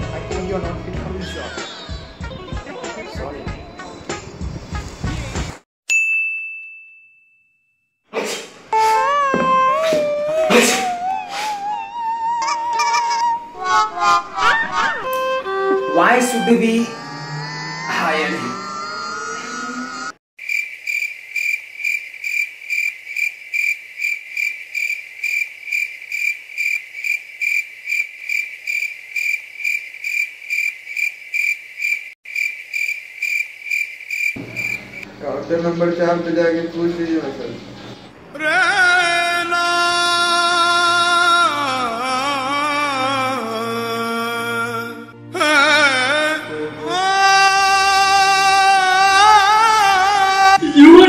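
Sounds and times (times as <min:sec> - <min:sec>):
bell-like ding: 0:05.9 - 0:07.9
cricket chirping: 0:20.4 - 0:35.2.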